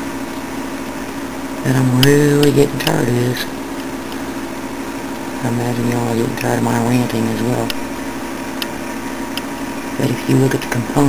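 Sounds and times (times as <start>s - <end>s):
background hum and hiss: 0.0s - 11.0s.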